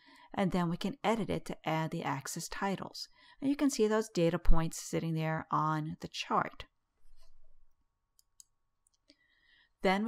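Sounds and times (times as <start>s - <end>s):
woman speaking: 0.3s - 6.7s.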